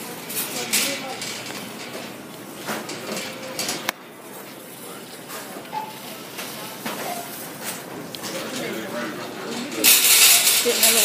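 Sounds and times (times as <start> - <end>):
faint chatter: 0.0 - 11.0.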